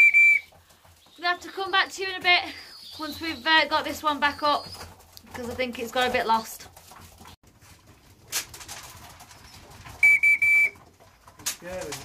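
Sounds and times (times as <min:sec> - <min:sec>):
whistle blasts: 0:00.0 - 0:00.5, 0:10.0 - 0:10.8.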